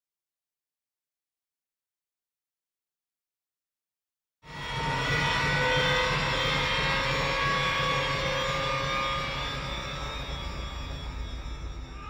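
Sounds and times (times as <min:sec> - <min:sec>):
ominous drone of held tones: 0:04.5 - 0:12.0
pulsing low rumble: 0:04.8 - 0:12.0.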